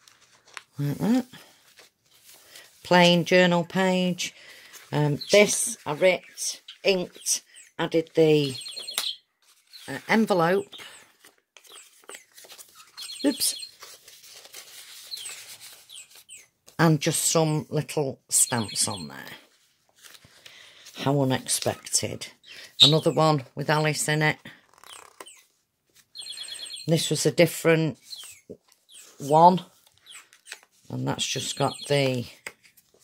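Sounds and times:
faint paper rustling: 0:00.0 - 0:16.8, 0:19.2 - 0:22.8, 0:28.0 - 0:33.0.

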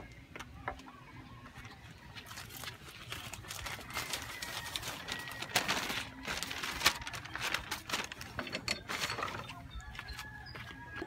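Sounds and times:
paper chart rustling and crinkling: 0:02.1 - 0:10.3.

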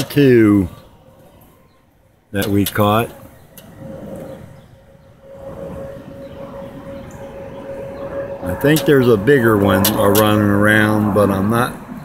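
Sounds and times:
steady humming tone: 0:00.0 - 0:12.0
low rumble: 0:03.1 - 0:12.0.

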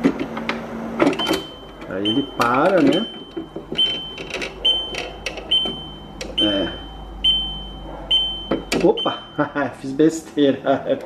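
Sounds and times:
dehumidifier humming: 0:00.0 - 0:11.0
high electronic beep: 0:01.2 - 0:09.4.

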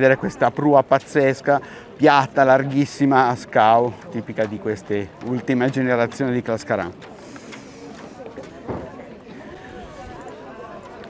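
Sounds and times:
background chatter of people: 0:00.0 - 0:11.0.

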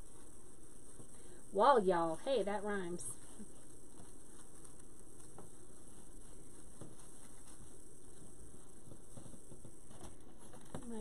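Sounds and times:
ribbon and mesh rustling: 0:00.0 - 0:11.0
steady background hiss: 0:00.0 - 0:11.0.

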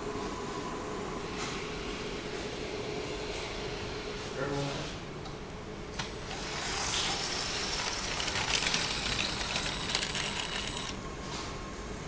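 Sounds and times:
wheels clattering on plastic track: 0:06.3 - 0:11.0
toy train motor whirring: 0:06.4 - 0:11.0.

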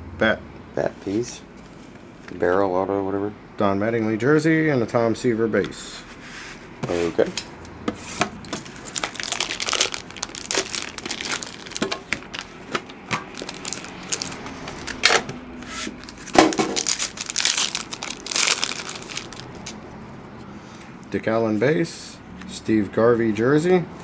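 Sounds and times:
plastic wrapping tearing and crinkling: 0:08.4 - 0:15.3, 0:15.9 - 0:19.8.

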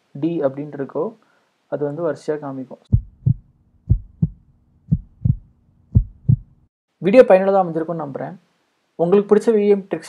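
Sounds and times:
heartbeat thumps: 0:02.9 - 0:06.6.

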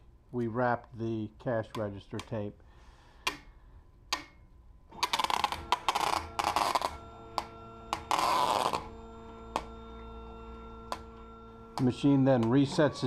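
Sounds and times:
stepper motor whine: 0:04.9 - 0:13.0
packing tape unrolling: 0:05.0 - 0:07.0.

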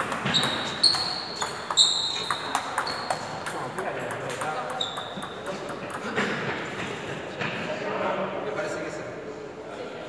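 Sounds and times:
ball pinging on tabletop: 0:00.0 - 0:06.1
table tennis ball hitting bats: 0:00.0 - 0:07.0
voices in a hall: 0:00.0 - 0:10.0.

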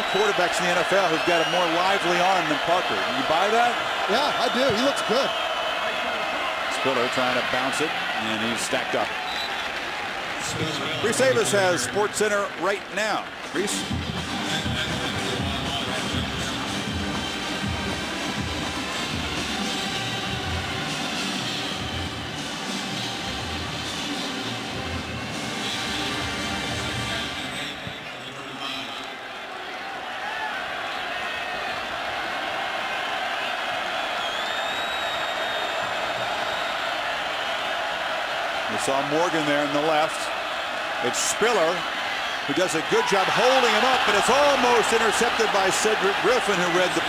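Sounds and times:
stadium crowd noise: 0:00.0 - 0:47.0
music with steady beat: 0:13.7 - 0:27.0.

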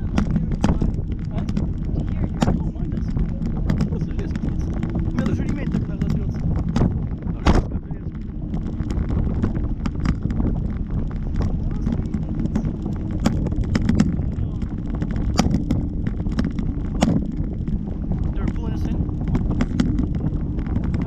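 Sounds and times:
sharp pops and taps: 0:00.0 - 0:21.0
wind buffeting microphone: 0:00.0 - 0:21.0.

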